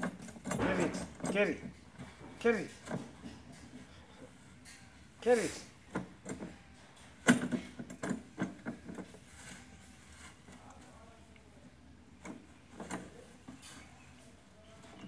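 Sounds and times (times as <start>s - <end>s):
plastic tub knocking and scraping: 7.3s - 9.7s.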